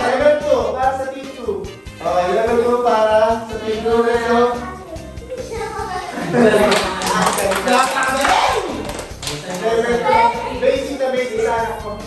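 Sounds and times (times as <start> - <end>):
people laughing and shouting: 5.0 - 11.0.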